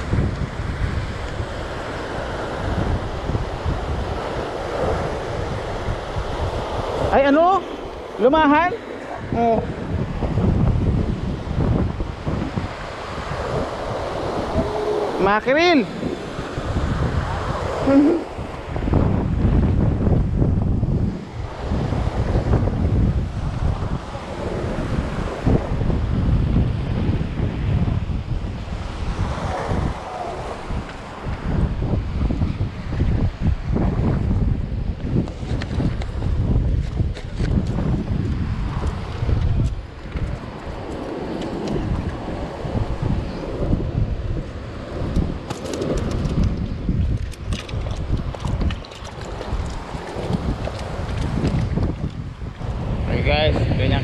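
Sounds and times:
surf washing over rocks: 0.0 - 54.0
wind buffeting microphone: 0.0 - 54.0.

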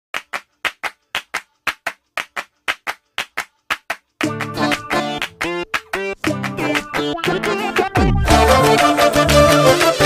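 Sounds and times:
rhythmic handclaps: 0.1 - 10.0.

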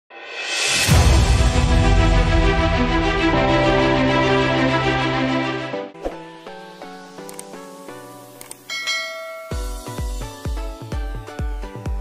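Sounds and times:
notification bell ding: 8.7 - 10.1.

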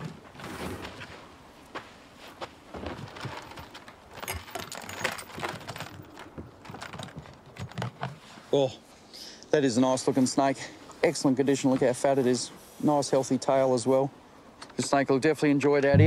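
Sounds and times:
footsteps on dry ground: 0.2 - 3.6
metal chain rattling on plastic lid: 3.1 - 8.1.

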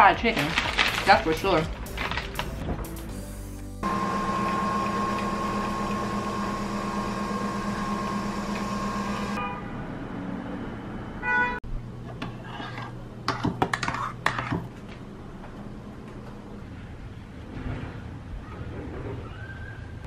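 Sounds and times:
coffee machine humming and whining: 3.8 - 9.4.

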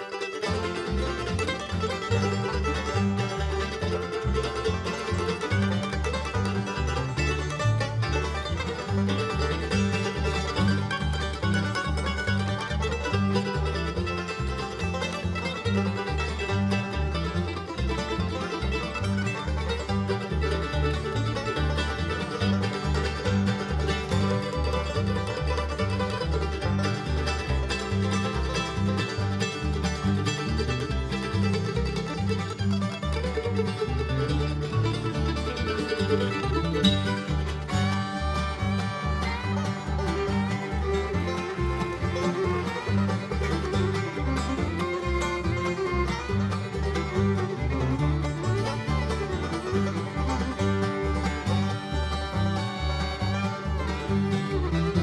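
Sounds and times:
bluegrass string band: 0.0 - 55.0
mandolin: 0.0 - 55.0
upright bass pulse: 0.8 - 55.0.

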